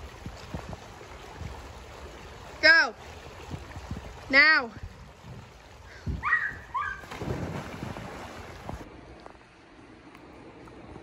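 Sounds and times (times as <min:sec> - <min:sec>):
water noise: 0:00.0 - 0:11.0
splash into pool: 0:06.8 - 0:08.9.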